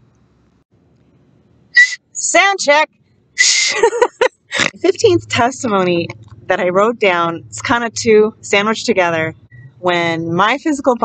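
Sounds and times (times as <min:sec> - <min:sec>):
woman speaking: 0:01.8 - 0:11.0.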